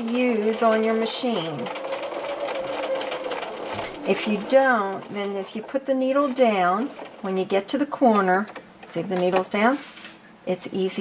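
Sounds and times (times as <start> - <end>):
sewing machine stitching: 0.0 - 8.6.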